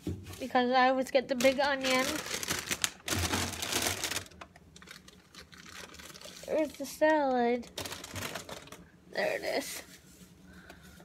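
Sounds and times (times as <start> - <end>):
grocery packaging rustling: 0.3 - 10.3.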